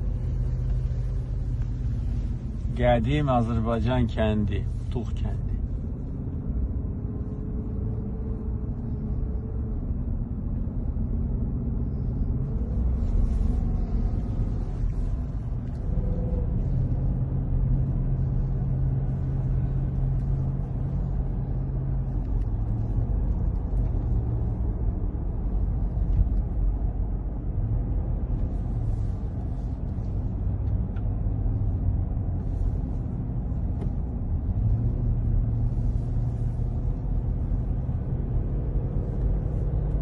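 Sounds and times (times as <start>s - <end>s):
car engine and tyres rumbling: 0.0s - 40.0s.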